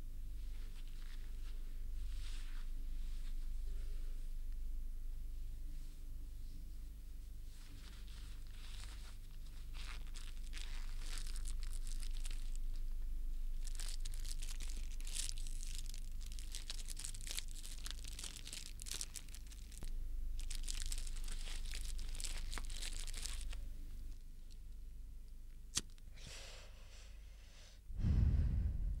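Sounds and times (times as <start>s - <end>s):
low mains hum: 0.0s - 29.0s
crackling and rustling: 7.6s - 24.6s.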